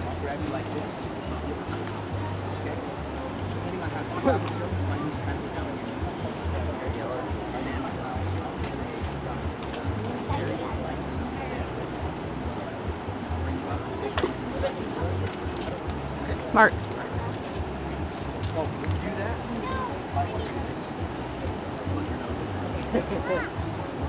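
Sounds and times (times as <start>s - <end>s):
faint low voices: 0.0s - 24.0s.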